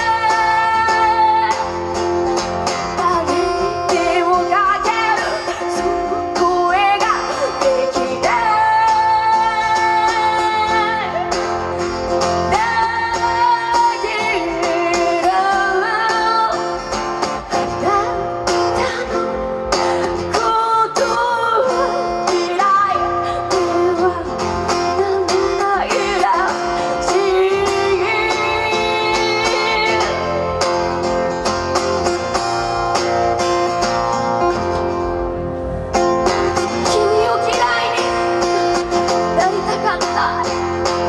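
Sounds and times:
woman singing: 0.0 - 2.1, 2.8 - 31.0, 36.2 - 41.0
acoustic guitar strumming: 0.0 - 41.0.

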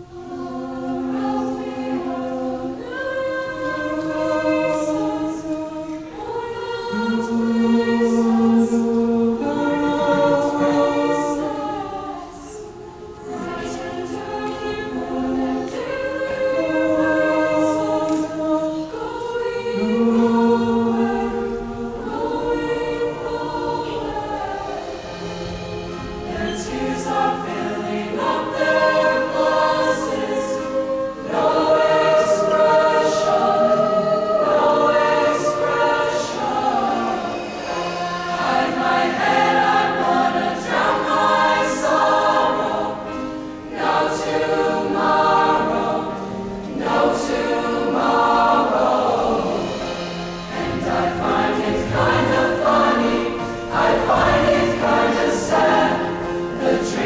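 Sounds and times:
choir singing in harmony: 0.0 - 57.0.

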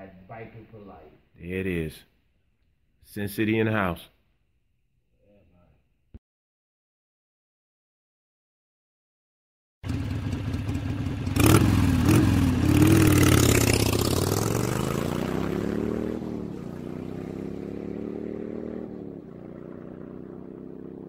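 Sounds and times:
motorcycle engine revving: 9.8 - 21.0.

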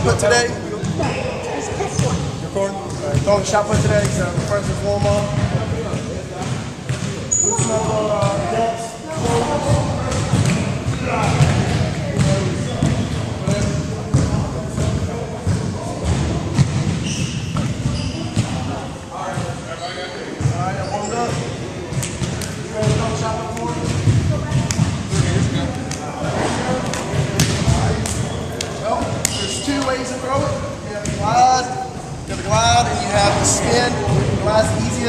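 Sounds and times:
voices echoing in a gymnasium: 0.0 - 35.0.

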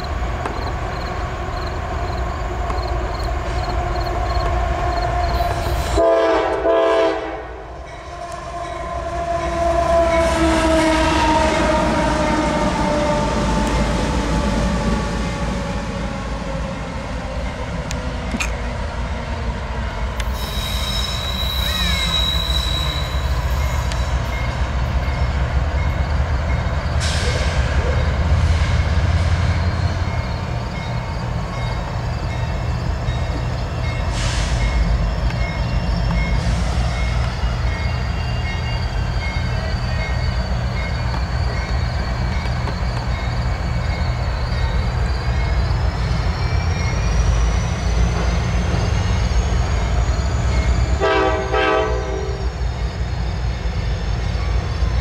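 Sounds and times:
train wheel and brake squeal: 0.0 - 7.1, 20.2 - 55.0
diesel locomotives rumbling: 0.0 - 55.0.

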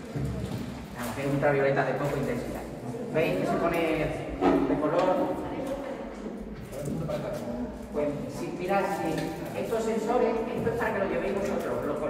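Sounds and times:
children chattering: 2.5 - 12.0.

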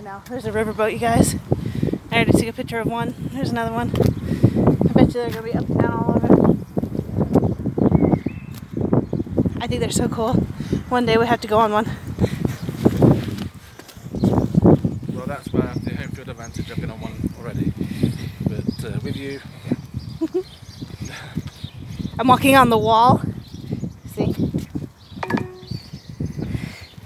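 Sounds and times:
footsteps on path: 3.8 - 5.8, 6.4 - 8.9, 12.0 - 14.9
phone navigation chime: 25.2 - 25.8.

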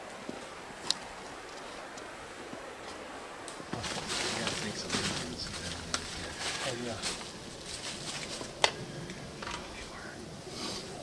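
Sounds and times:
low indistinct men's voices: 1.6 - 11.0.

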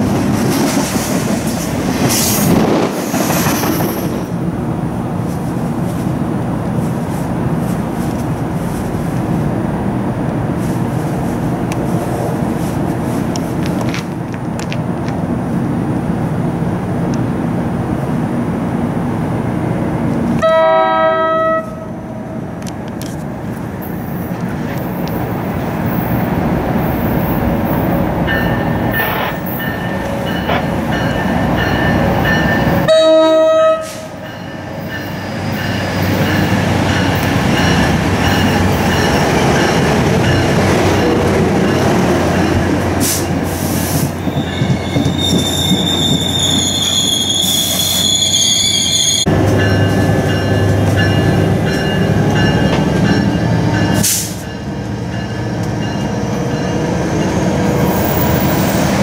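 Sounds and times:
train wheels rumbling on rails: 0.0 - 20.5, 21.7 - 59.0
train horn: 20.4 - 22.2, 32.8 - 34.2
high wheel squeal: 43.8 - 49.3.

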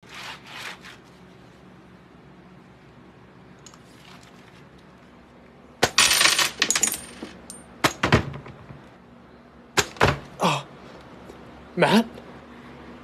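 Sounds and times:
keyboard crashing on desk: 5.8 - 8.6, 9.8 - 10.3
sharp knocks: 9.8 - 10.3.

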